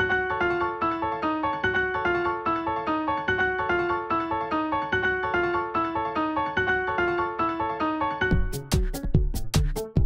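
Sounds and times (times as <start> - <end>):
piano-like keyboard repeating notes: 0.0 - 10.0.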